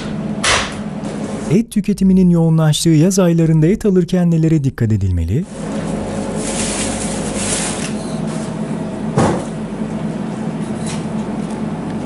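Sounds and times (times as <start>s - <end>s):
steady low hum: 0.0s - 12.0s
plastic bag rustling: 5.6s - 8.4s.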